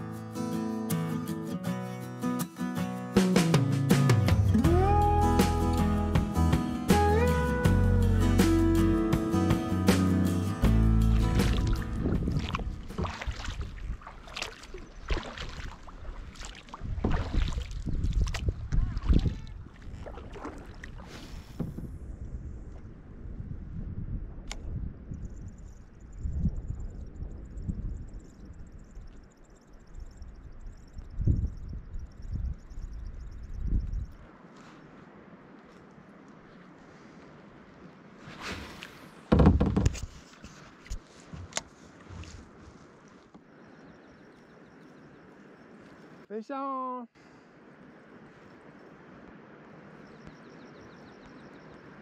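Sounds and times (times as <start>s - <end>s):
paddle strokes: 11.0s - 21.9s, 34.4s - 43.5s
wind buffeting microphone: 11.0s - 29.4s, 30.0s - 34.3s
water splashing against plastic hull: 11.1s - 21.9s, 38.4s - 42.5s.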